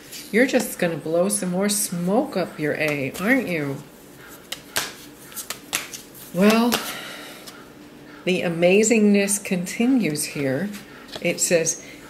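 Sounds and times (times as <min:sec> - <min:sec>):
cards clicking and snapping: 0:04.5 - 0:06.9.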